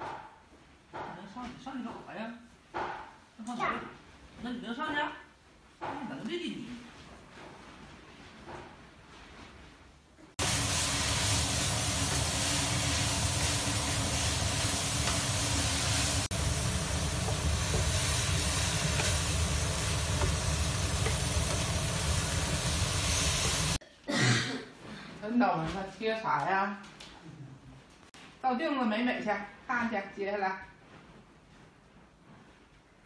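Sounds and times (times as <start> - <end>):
food sizzling in a wok: 10.4 - 23.8.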